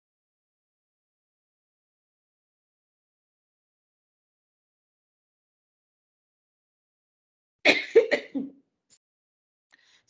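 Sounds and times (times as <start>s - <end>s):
woman clearing her throat: 7.7s - 8.5s.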